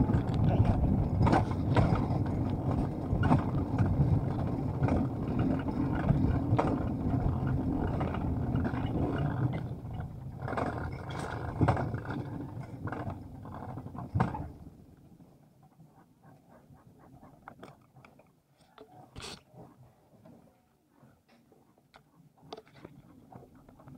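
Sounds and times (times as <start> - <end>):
sled rushing down steel track: 0.0 - 14.7.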